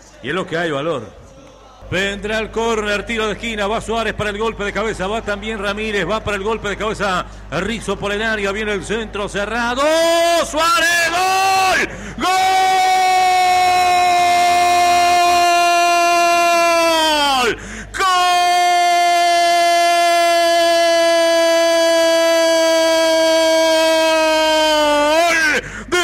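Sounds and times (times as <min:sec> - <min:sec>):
commentator's long goal shout: 0:09.8 - 0:26.0.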